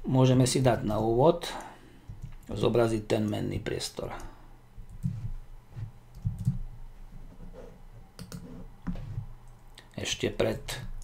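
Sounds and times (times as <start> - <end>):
keyboard typing clicks: 6.1 - 6.6.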